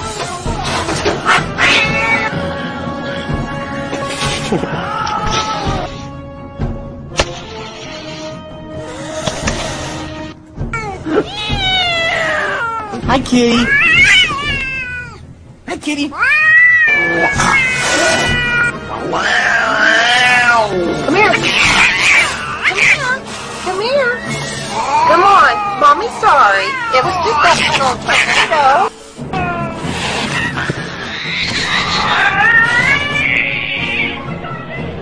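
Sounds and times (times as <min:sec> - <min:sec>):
cat yowling: 0:00.0 - 0:02.4, 0:11.1 - 0:13.0, 0:13.6 - 0:15.2, 0:16.2 - 0:23.3, 0:24.0 - 0:34.6.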